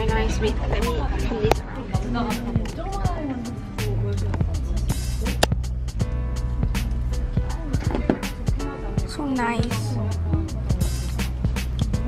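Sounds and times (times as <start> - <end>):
pop music with singing: 0.0 - 12.0.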